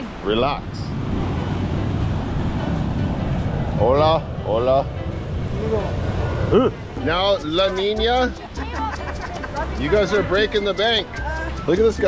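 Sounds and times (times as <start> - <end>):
wind buffeting microphone: 0.0 - 11.7.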